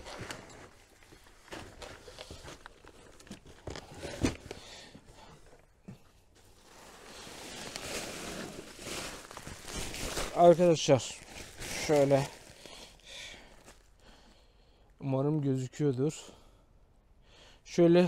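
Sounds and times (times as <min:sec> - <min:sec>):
plastic sacks crinkling: 0:06.3 - 0:14.0.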